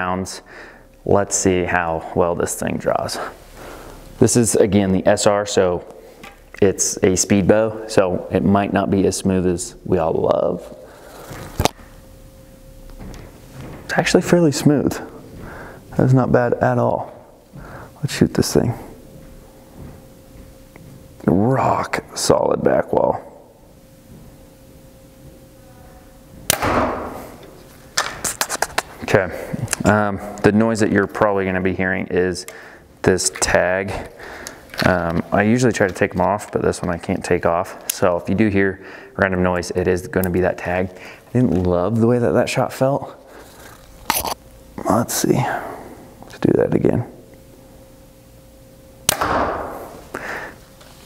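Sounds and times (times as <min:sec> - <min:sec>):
faint steady hum: 0:00.0 - 0:51.0.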